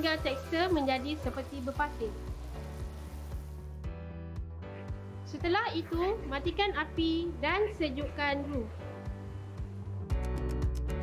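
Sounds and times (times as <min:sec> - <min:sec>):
roux sizzling in a frying pan: 0:00.0 - 0:03.9
background music with bass and beat: 0:09.0 - 0:11.0.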